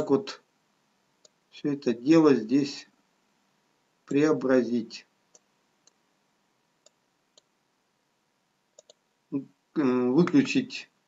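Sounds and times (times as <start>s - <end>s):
faint computer mouse clicks: 1.2s - 1.4s, 5.3s - 6.0s, 6.8s - 7.5s, 8.7s - 9.0s.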